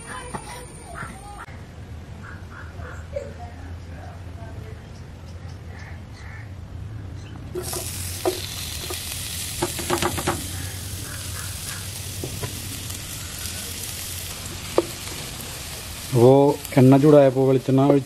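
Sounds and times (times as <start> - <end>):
onions sizzling in hot oil: 7.5 - 18.0
sharp clicks and knocks: 9.6 - 10.5.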